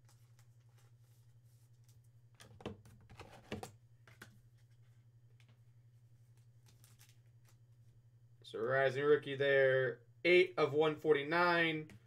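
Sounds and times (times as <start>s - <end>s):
steady low hum: 3.8s - 12.0s.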